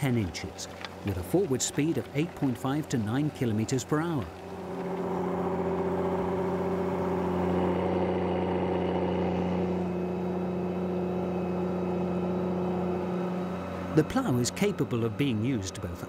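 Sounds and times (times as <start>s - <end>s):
tractor diesel engine under load: 0.0s - 16.0s.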